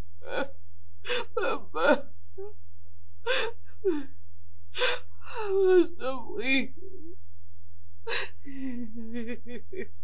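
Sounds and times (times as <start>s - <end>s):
woman crying and sobbing: 1.1s - 2.0s, 3.3s - 4.0s, 4.8s - 7.1s, 8.1s - 10.0s.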